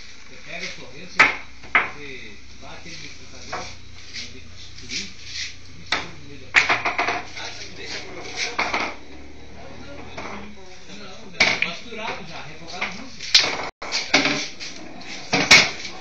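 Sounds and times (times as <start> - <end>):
pool balls clacking: 5.9 - 9.3, 11.4 - 16.0.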